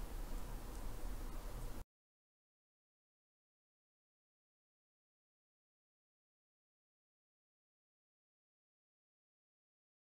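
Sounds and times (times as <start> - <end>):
faint low hum: 0.0 - 1.8
low hiss: 0.0 - 1.8.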